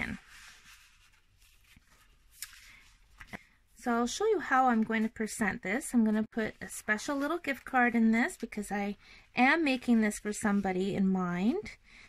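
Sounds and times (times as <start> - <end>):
paper envelope being handled: 0.0 - 3.4.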